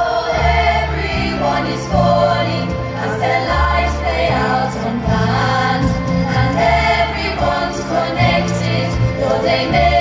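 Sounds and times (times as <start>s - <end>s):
accordion: 0.0s - 10.0s
cast singing together: 0.0s - 10.0s
low bass notes: 0.0s - 10.0s.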